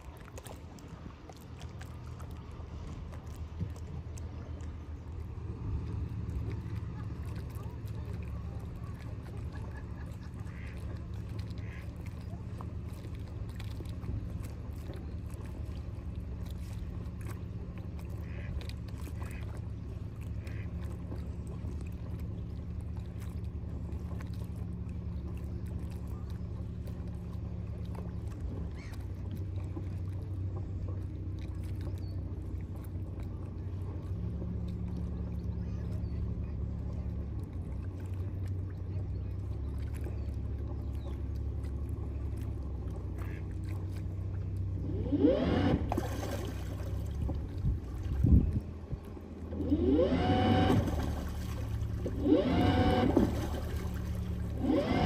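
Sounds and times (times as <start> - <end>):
motor boat engines humming: 0.0 - 55.0.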